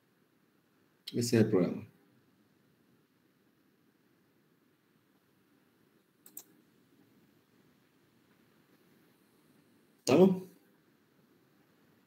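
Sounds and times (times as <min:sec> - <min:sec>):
faint room hiss: 0:00.0 - 0:12.0
computer mouse clicks: 0:06.2 - 0:06.6.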